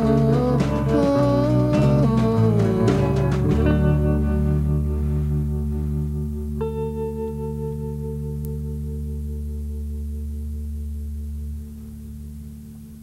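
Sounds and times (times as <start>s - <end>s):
bass guitar note: 0.0s - 13.0s
electric guitar chord ringing: 0.0s - 13.0s.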